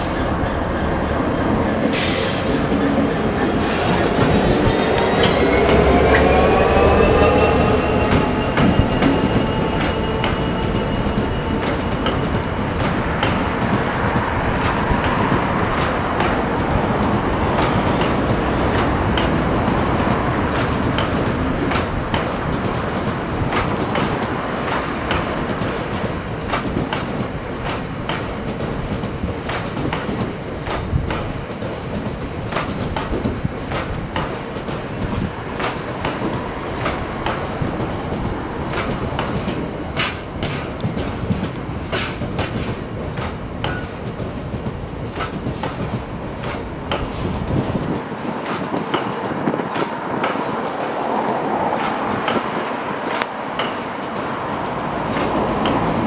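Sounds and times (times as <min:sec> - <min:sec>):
diesel locomotive engine working: 0:00.0 - 0:56.0
train wheels clicking over rail joints: 0:00.0 - 0:56.0.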